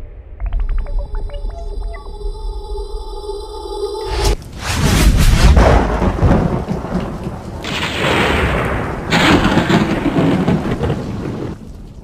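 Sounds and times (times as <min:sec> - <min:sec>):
rolling thunder: 0:04.4 - 0:11.6
loud thunder cracks: 0:04.7 - 0:11.6
rain: 0:05.2 - 0:12.0.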